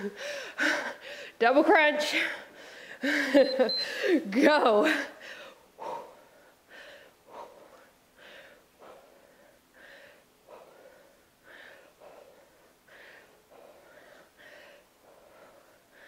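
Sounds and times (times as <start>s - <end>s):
woman breathing hard: 0.0s - 1.4s, 2.1s - 4.3s, 4.9s - 16.0s.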